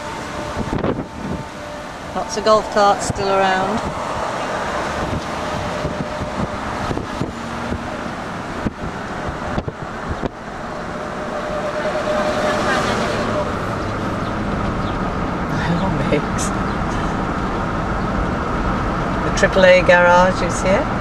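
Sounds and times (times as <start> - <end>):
wind on microphone: 0.0 - 15.5
car road and engine noise: 0.0 - 21.0.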